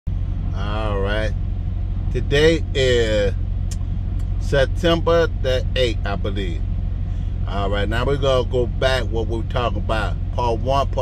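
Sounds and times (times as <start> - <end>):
low pulsing rumble: 0.1 - 11.0
man's drawn-out voice: 0.6 - 1.4, 2.1 - 3.4, 4.4 - 6.6, 7.4 - 11.0.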